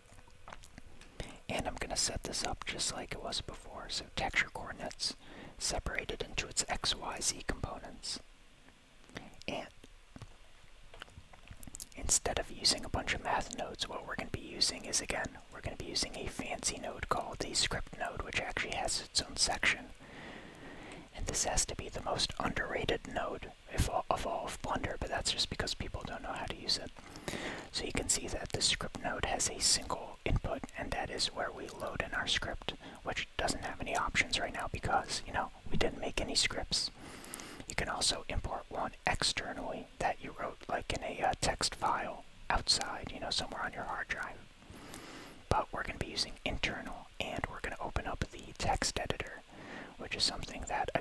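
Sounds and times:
man whispering: 0:01.2 - 0:08.3, 0:09.1 - 0:09.8, 0:11.6 - 0:51.0.

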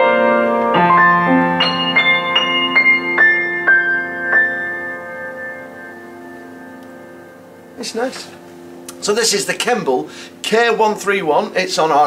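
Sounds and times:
piano chord ringing out: 0:00.0 - 0:12.0.

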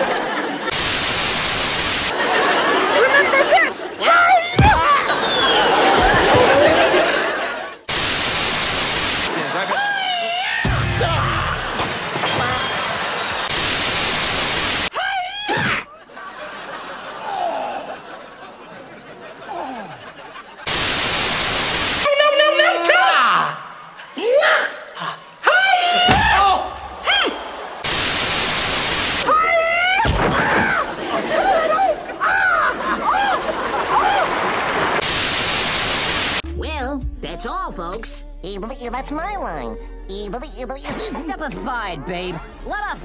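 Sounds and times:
television static hiss: 0:00.6 - 0:02.2, 0:07.4 - 0:09.7, 0:13.5 - 0:14.9, 0:20.4 - 0:22.1, 0:27.8 - 0:29.2, 0:35.0 - 0:36.4
voices: 0:09.2 - 0:11.7
person yelling: 0:09.6 - 0:11.8, 0:22.1 - 0:27.5
person crying out: 0:09.7 - 0:11.7.

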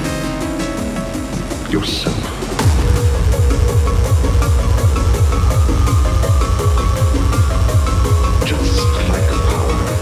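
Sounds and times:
fast kick drum: 0:02.6 - 0:09.0.

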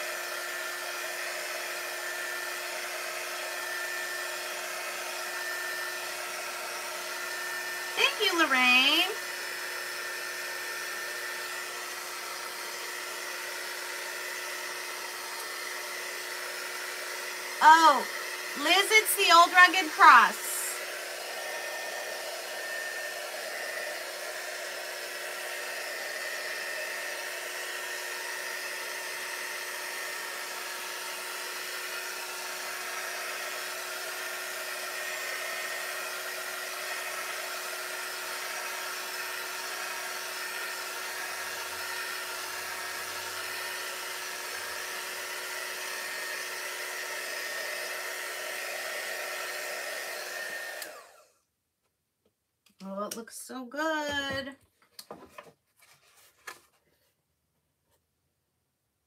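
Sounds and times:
heat gun running: 0:00.0 - 0:51.3.

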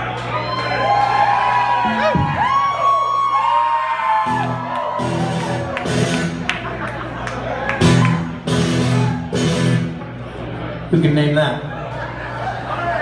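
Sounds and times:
crowd whooping: 0:00.0 - 0:09.9, 0:11.7 - 0:13.0.

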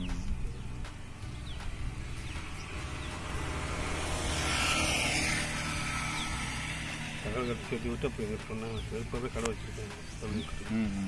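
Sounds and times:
steady low rumble: 0:00.0 - 0:10.8
vehicle passing by: 0:00.0 - 0:11.0.

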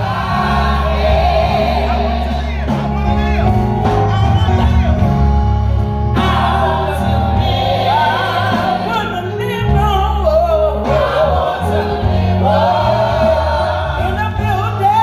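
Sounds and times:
women's gospel group singing: 0:00.0 - 0:02.7, 0:06.1 - 0:15.0
low instrumental backing: 0:00.0 - 0:15.0.

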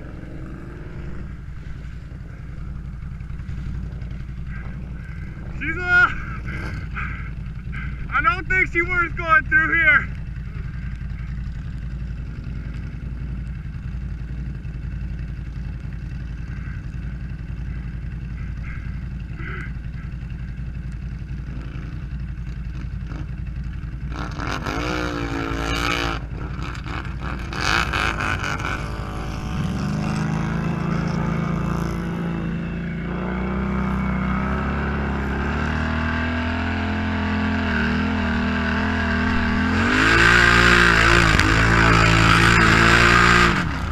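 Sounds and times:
atv engine revving: 0:00.0 - 0:43.9
atv engines idling: 0:00.0 - 0:43.9.

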